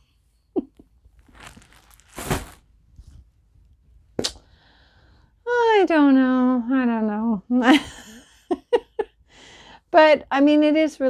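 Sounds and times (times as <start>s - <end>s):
plastic bag rustling and crinkling: 1.2s - 3.1s.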